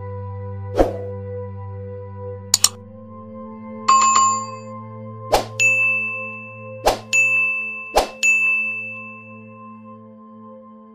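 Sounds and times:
faint low drone: 0.2s - 3.9s
bright bell-like ding: 3.9s - 4.7s, 5.6s - 9.6s.

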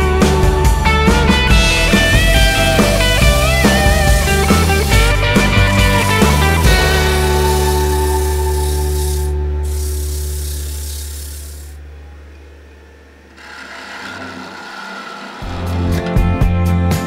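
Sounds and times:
strummed guitar music: 0.0s - 10.4s
lathe humming: 1.6s - 16.3s
tool scraping spinning wood: 1.9s - 16.3s
sandpaper rubbing on wood: 2.7s - 11.8s.

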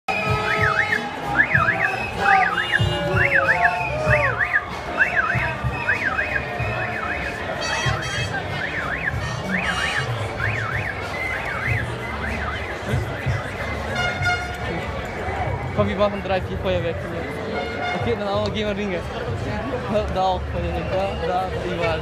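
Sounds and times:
crowd voices: 0.1s - 22.0s.

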